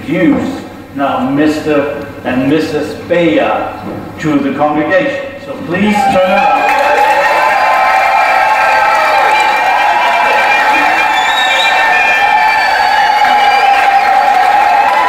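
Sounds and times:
crowd cheering and shouting: 5.9s - 15.0s
people clapping: 6.0s - 15.0s.

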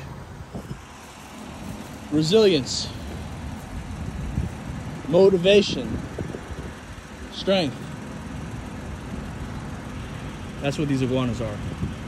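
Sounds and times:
outdoor background noise: 0.0s - 12.0s
vehicle engine humming: 0.0s - 12.0s.

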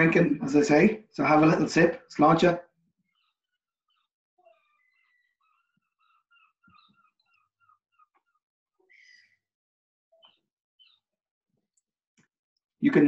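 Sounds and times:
faint high-pitched chirps: 3.1s - 8.1s, 10.2s - 11.0s.

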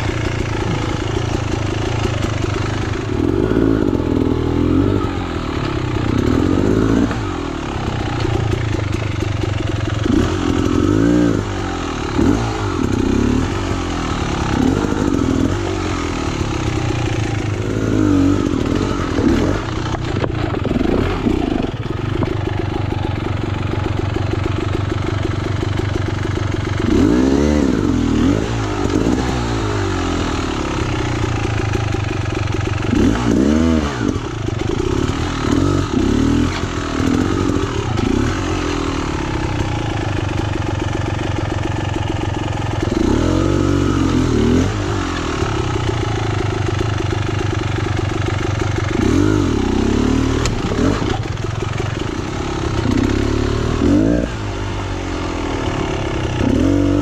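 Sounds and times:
motorcycle engine throttle blips: 16.2s - 27.1s.

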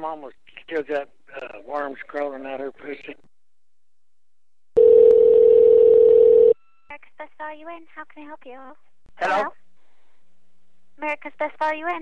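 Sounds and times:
telephone ringback tone: 4.8s - 6.9s.

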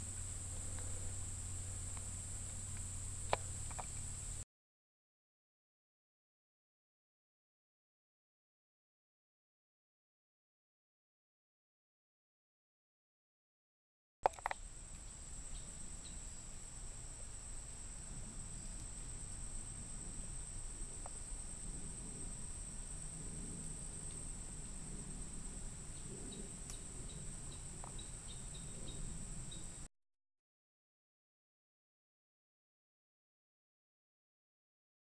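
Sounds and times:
insects trilling: 0.0s - 4.4s, 14.3s - 29.9s.

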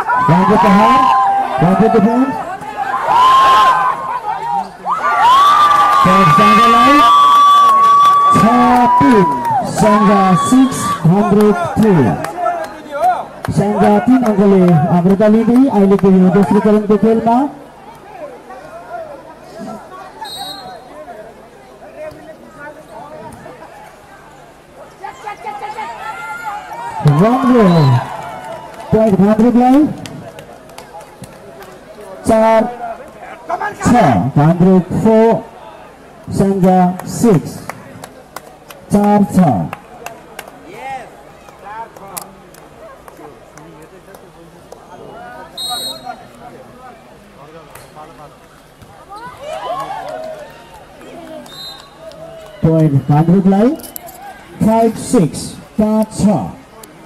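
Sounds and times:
crowd cheering and shouting: 0.0s - 21.1s, 24.9s - 30.3s, 48.8s - 56.7s
low background noise: 0.0s - 57.0s.

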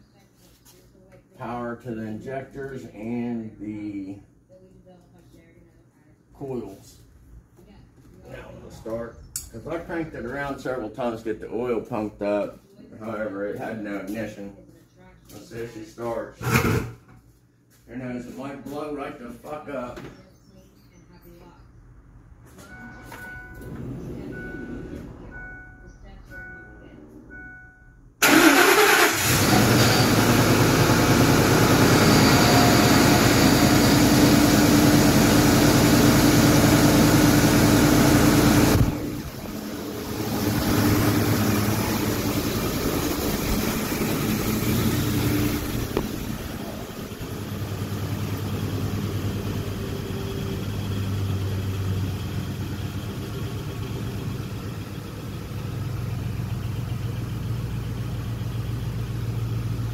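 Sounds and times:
car engine starting and running: 22.6s - 59.9s.

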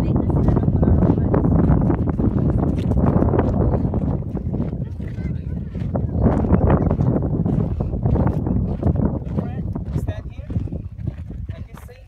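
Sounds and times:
footsteps on stony sand: 0.0s - 12.0s
wind buffeting microphone: 0.0s - 12.0s.

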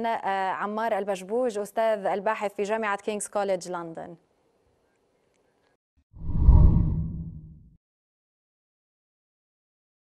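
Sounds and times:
deep whoosh: 6.2s - 7.7s.

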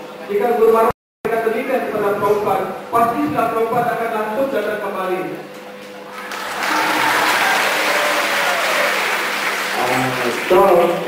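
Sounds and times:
audience applauding: 6.1s - 11.0s.

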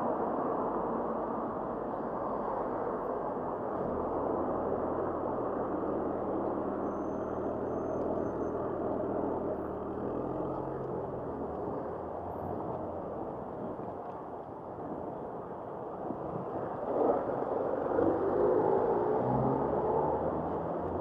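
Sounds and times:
car engines humming in traffic: 0.0s - 21.0s
wind and road noise: 0.0s - 21.0s.

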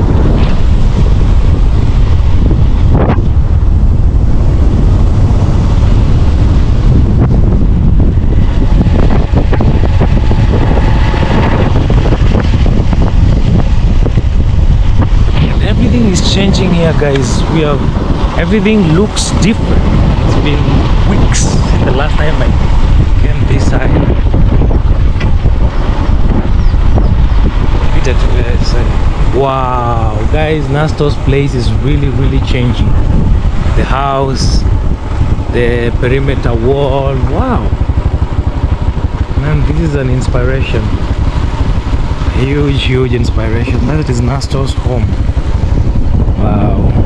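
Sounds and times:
motorcycle engine running: 0.0s - 47.0s
wind buffeting microphone: 0.0s - 47.0s.

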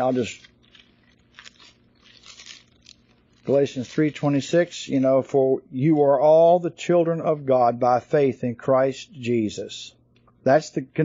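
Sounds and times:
pages rustling: 0.0s - 4.6s.

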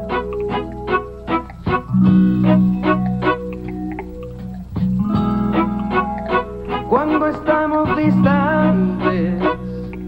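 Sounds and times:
steady drum beat: 0.0s - 8.5s
electric guitar: 0.0s - 10.0s
wavering melody with vibrato: 0.0s - 10.0s.

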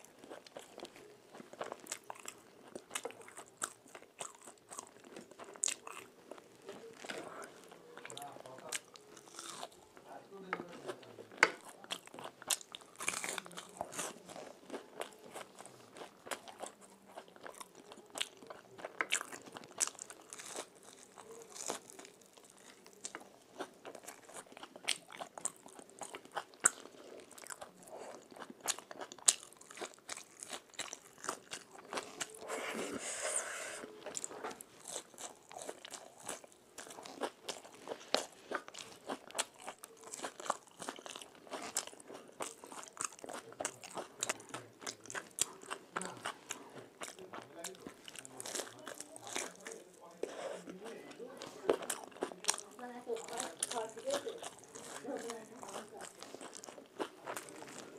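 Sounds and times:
chewing and crunching snacks: 0.0s - 57.9s.

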